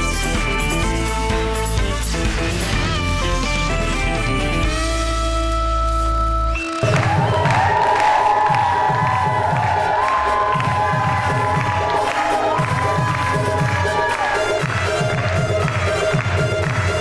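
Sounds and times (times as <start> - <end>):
upbeat dance music: 0.0 - 17.0
audience cheering: 6.6 - 17.0.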